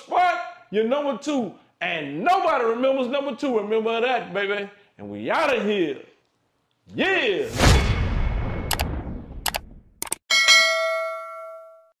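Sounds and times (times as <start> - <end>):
mouse clicks: 8.7 - 10.2
notification bell dinging: 10.3 - 11.9.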